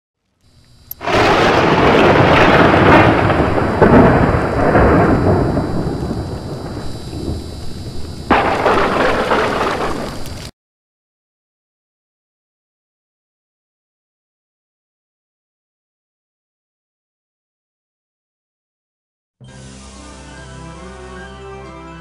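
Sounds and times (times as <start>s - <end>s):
loud rumbling crash: 1.0s - 10.5s.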